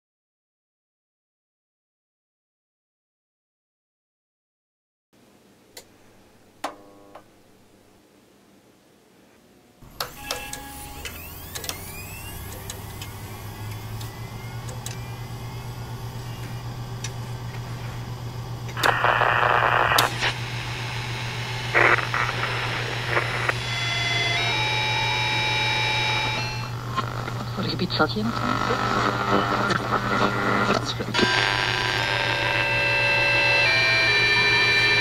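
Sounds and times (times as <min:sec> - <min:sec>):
gliding whistling tones: 0:10.8 - 0:15.9
radio hum and static: 0:11.9 - 0:33.6
radio click: 0:16.2 - 0:17.7, 0:18.6 - 0:21.1, 0:21.7 - 0:23.6, 0:26.2 - 0:31.6.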